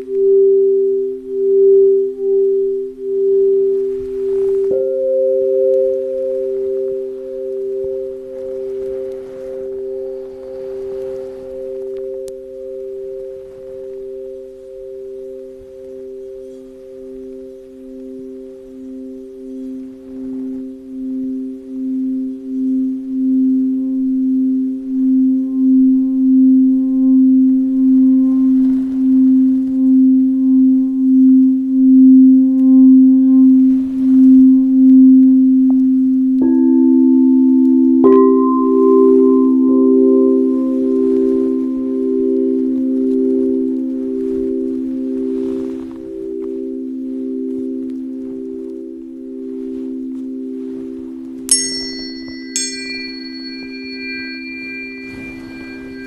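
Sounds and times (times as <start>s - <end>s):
singing bowl struck: 0.0s - 45.2s, 51.4s - 56.0s
crystal singing bowls ringing: 0.0s - 56.0s
wand rubbing bowl rim: 51.5s - 56.0s.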